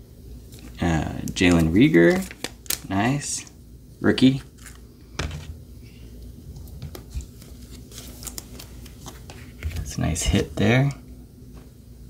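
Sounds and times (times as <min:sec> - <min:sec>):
card handling rustling: 0:00.5 - 0:03.2, 0:04.4 - 0:05.6, 0:06.9 - 0:10.7.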